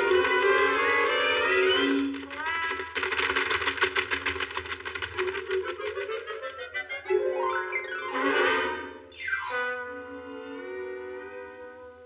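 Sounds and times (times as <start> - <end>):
fast rattle of clicks: 2.1 - 6.6.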